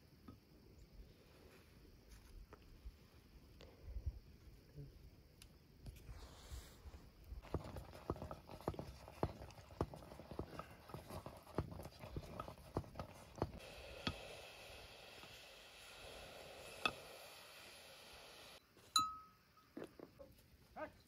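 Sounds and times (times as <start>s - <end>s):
ringing metallic clinks: 19.0s - 19.4s.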